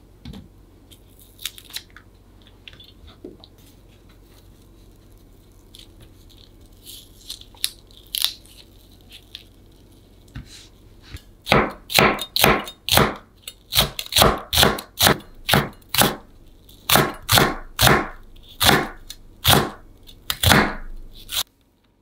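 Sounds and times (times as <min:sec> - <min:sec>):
onion layers crackling: 0:03.6 - 0:11.4.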